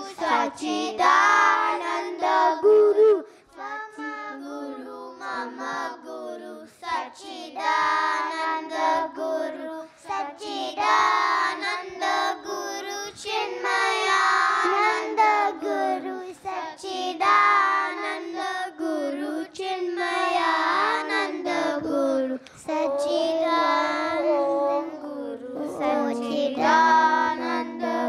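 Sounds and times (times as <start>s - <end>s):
children singing devotional song: 0.0s - 28.0s.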